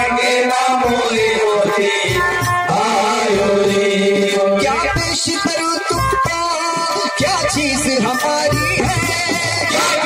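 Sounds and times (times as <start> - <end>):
hand drums: 0.0 - 10.0
harmonium: 0.0 - 10.0
men singing a devotional chant: 0.0 - 10.0.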